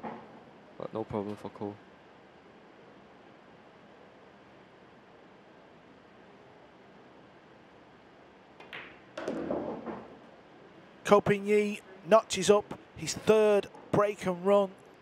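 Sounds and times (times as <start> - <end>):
billiard balls clicking: 8.6 - 10.2
pool cue striking ball: 8.6 - 10.2.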